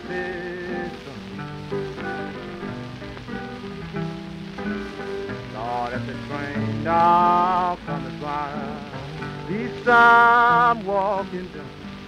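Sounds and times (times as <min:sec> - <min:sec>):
person singing: 0:00.0 - 0:04.0, 0:04.7 - 0:12.0
acoustic blues guitar: 0:00.0 - 0:12.0
record surface hiss and crackle: 0:00.0 - 0:12.0.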